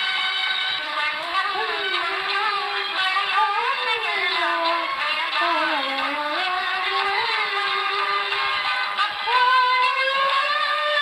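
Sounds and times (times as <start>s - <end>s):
woman singing unaccompanied: 1.1s - 8.4s, 9.2s - 11.0s.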